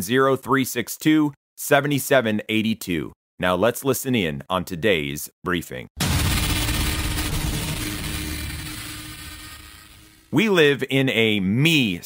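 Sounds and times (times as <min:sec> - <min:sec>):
low rumbling hit: 0:06.0 - 0:10.3.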